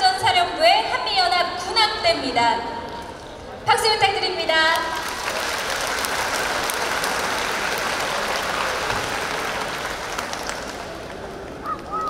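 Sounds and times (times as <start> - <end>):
audience applauding: 4.9 - 12.0.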